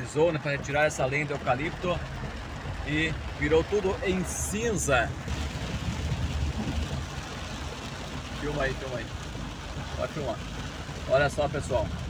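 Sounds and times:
car engine and tyres rumbling: 0.0s - 12.0s
heavy rain and spray on car: 0.0s - 12.0s.

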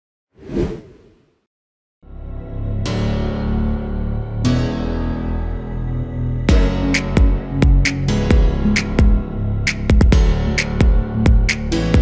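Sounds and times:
whoosh sound effect: 0.4s - 1.3s.

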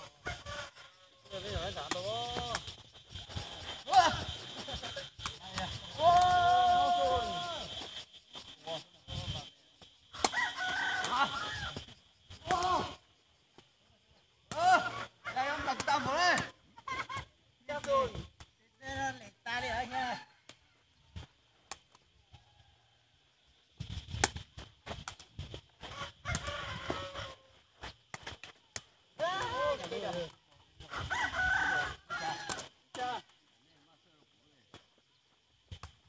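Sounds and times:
rooster crowing: 0.0s - 1.4s, 10.1s - 11.8s, 25.9s - 27.6s, 30.9s - 32.6s.

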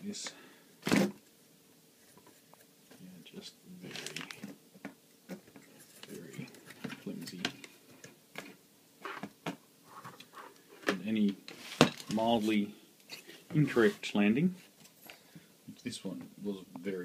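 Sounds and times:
plastic bag rustling: 3.8s - 4.6s, 9.9s - 12.6s.

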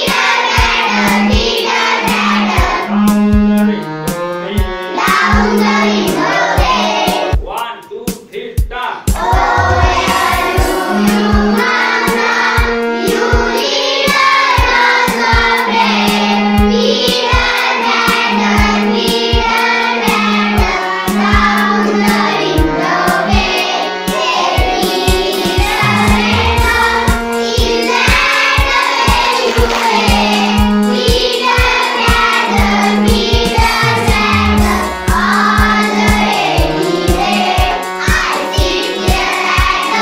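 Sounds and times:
children singing in chorus: 0.0s - 3.8s, 4.9s - 7.3s, 9.2s - 40.0s
steady beat: 0.1s - 40.0s
low accompanying notes: 20.1s - 37.6s.

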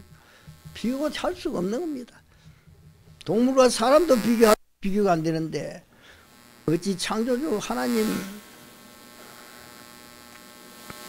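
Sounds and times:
electrical mains hum: 0.0s - 11.0s
faint click: 10.3s - 11.0s.

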